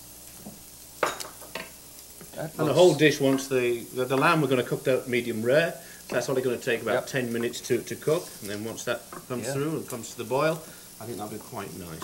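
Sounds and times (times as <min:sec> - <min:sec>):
faint sizzle from pan: 0:00.0 - 0:12.0.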